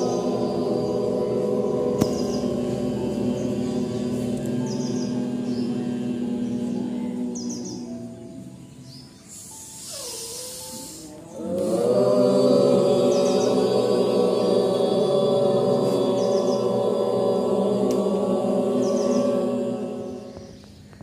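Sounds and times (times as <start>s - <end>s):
chanting: 0.0s - 21.0s
meditative drone music: 0.0s - 21.0s.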